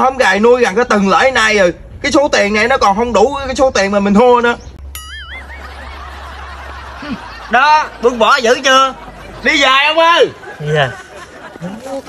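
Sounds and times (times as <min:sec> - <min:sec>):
warbling tone: 0:04.9 - 0:06.1
stifled snicker: 0:05.4 - 0:08.2, 0:10.3 - 0:12.0.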